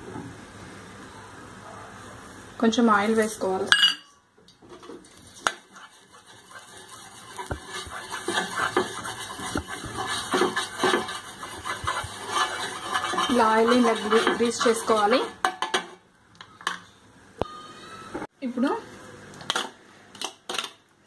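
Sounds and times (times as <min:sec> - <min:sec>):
wooden spatula scraping a frying pan: 0:04.7 - 0:16.0.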